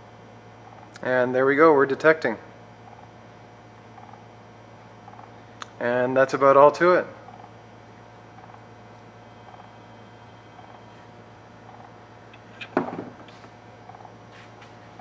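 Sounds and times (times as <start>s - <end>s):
faint electrical hum: 0.0s - 15.0s.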